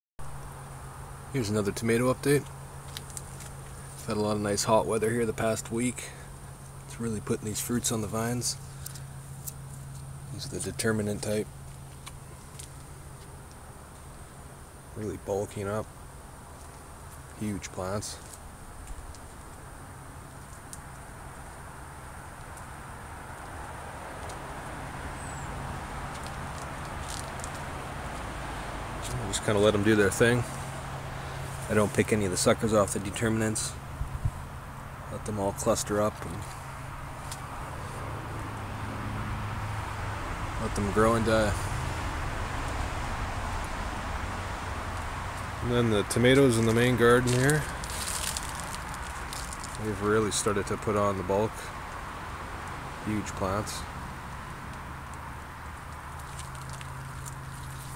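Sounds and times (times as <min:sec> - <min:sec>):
outdoor rumble: 0:00.2 - 0:57.9
man speaking: 0:01.4 - 0:02.5, 0:04.0 - 0:06.3, 0:06.9 - 0:08.6, 0:10.3 - 0:11.5, 0:15.0 - 0:15.9, 0:17.4 - 0:18.2, 0:29.0 - 0:30.6, 0:31.7 - 0:33.8, 0:35.1 - 0:36.5, 0:40.6 - 0:41.7, 0:45.6 - 0:47.8, 0:49.8 - 0:51.7, 0:53.0 - 0:53.9
faint crackles: 0:25.4 - 0:28.4, 0:44.9 - 0:50.5, 0:54.3 - 0:57.9.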